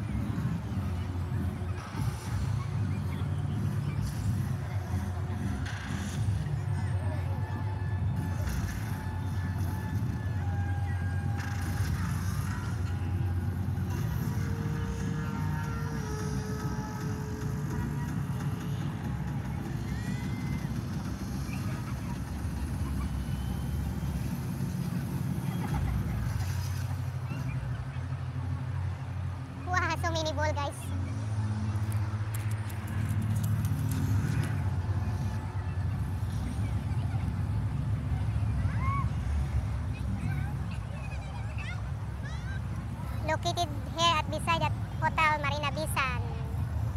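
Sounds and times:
distant voices: 0:00.0 - 0:46.9
faint music: 0:00.0 - 0:46.9
low city rumble: 0:00.0 - 0:46.9.

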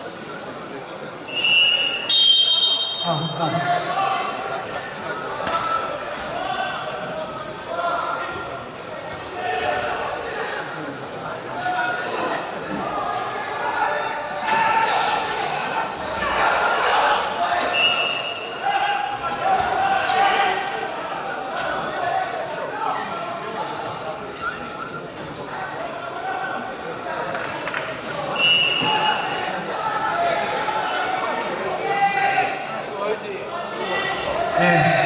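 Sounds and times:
voices calling out in echoing hall: 0:00.0 - 0:35.0.

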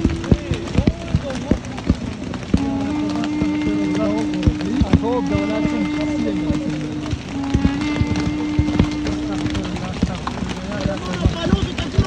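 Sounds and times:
music: 0:00.0 - 0:12.0
sharp knocks: 0:00.0 - 0:12.0
voices: 0:00.0 - 0:12.0.

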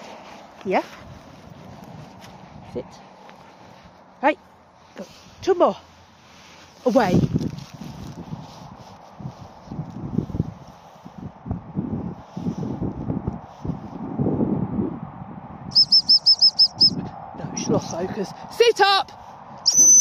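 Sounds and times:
low rustling noise: 0:00.0 - 0:14.2
short high whistle pips: 0:15.7 - 0:17.0, 0:19.6 - 0:20.0.

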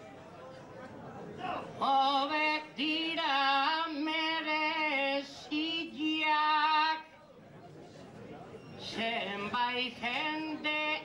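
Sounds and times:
person singing unaccompanied: 0:01.8 - 0:07.1, 0:08.8 - 0:11.0.

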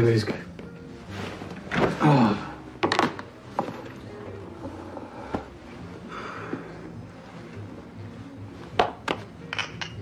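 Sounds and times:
faint background music: 0:00.0 - 0:10.0
glass tumbler clinking on counter: 0:09.5 - 0:10.0.

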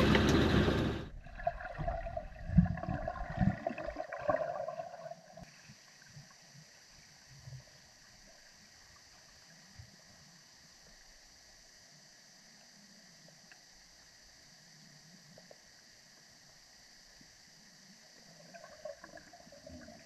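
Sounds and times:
van engine and road noise: 0:00.0 - 0:01.1
water gurgling underwater: 0:00.0 - 0:05.5, 0:18.4 - 0:20.0
faint hiss: 0:05.2 - 0:20.0.

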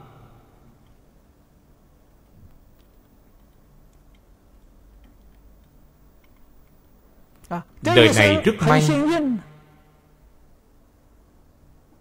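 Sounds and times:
low hum: 0:00.0 - 0:01.3
faint ticks: 0:02.2 - 0:07.5.

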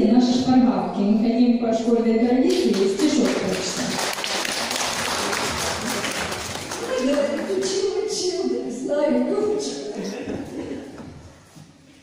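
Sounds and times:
audience applause: 0:02.7 - 0:07.8.

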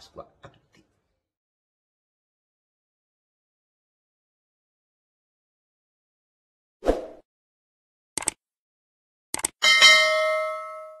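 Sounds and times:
bright bell ding: 0:09.6 - 0:11.0.

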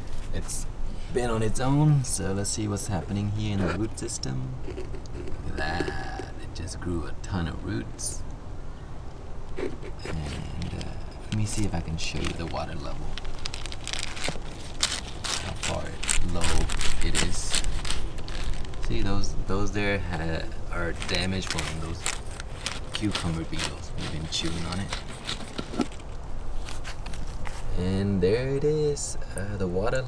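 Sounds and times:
plastic clicks and leaf rustles: 0:09.5 - 0:19.1, 0:20.8 - 0:27.6
plastic bag crinkling: 0:09.6 - 0:19.1, 0:20.7 - 0:27.7.

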